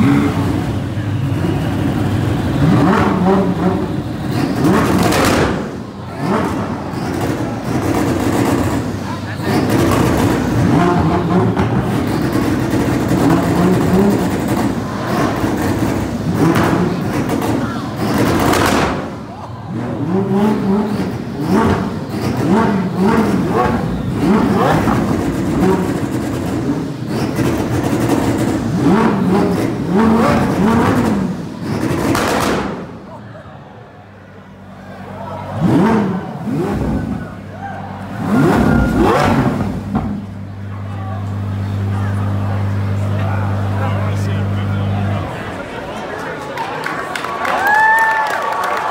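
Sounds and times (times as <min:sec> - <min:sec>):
car engine revving: 0:00.0 - 0:33.2, 0:34.0 - 0:46.0
crowd voices: 0:00.0 - 0:48.9.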